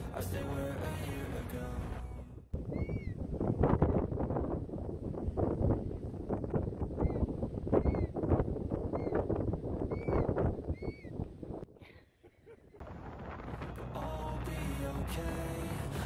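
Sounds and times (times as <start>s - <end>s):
wind buffeting microphone: 2.5s - 11.7s, 12.7s - 16.0s
high chirping bird calls: 2.7s - 3.2s, 7.8s - 8.1s, 9.9s - 11.2s.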